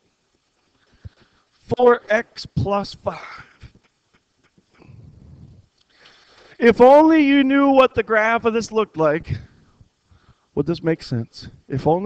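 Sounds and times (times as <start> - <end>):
low rumble: 4.8 - 5.7.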